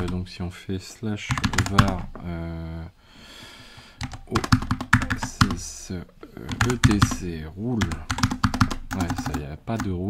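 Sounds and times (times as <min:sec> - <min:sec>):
keyboard typing: 0:00.0 - 0:00.2, 0:01.3 - 0:02.2, 0:04.0 - 0:05.7, 0:06.3 - 0:10.0.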